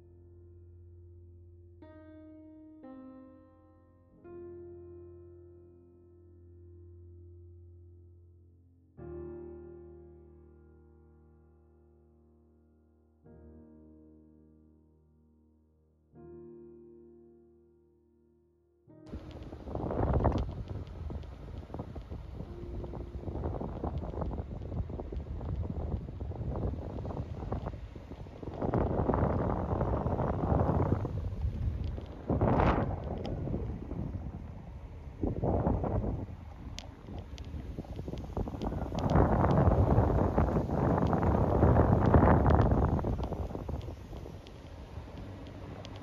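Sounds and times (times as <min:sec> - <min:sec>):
low rumble of road travel: 0:19.1 - 0:46.0
wind buffeting microphone: 0:19.1 - 0:46.0.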